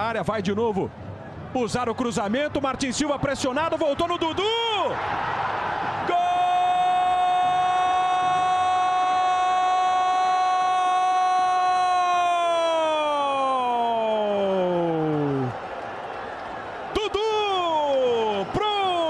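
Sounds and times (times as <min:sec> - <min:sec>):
faint crowd noise: 0:00.0 - 0:07.4
commentator shouting goal call: 0:17.0 - 0:19.0.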